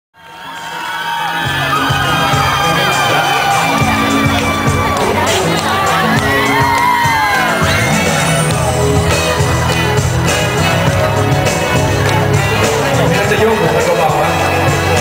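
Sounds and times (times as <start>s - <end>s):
concert audience cheering and screaming: 0.2s - 15.0s
song music with bass: 1.4s - 15.0s.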